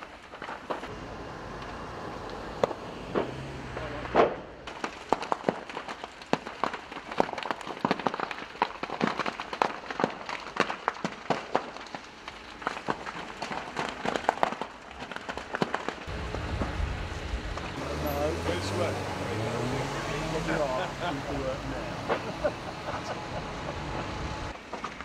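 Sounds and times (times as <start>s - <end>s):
fire crackling and popping: 0.0s - 25.0s
low steady rumble: 16.1s - 17.8s, 20.8s - 24.5s.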